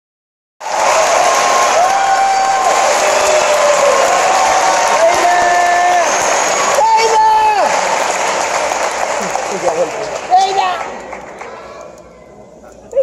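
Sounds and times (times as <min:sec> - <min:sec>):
audience applauding and cheering: 0:00.6 - 0:12.2.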